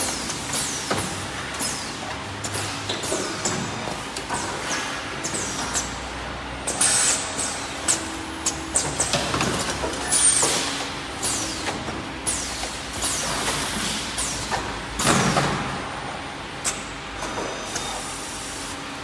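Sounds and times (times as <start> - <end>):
pneumatic cylinders hissing: 10.0 - 14.6.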